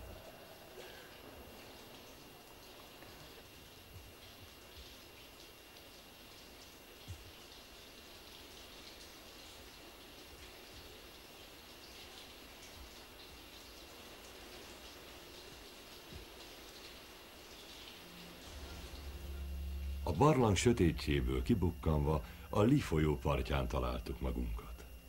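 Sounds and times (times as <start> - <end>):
water dripping: 0.0 - 25.0
soft even hiss: 0.1 - 25.0.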